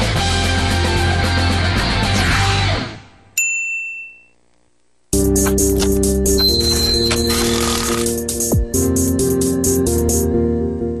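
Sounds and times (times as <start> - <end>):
bright ding: 3.4 - 4.4, 6.4 - 7.3
intro music: 5.1 - 11.0.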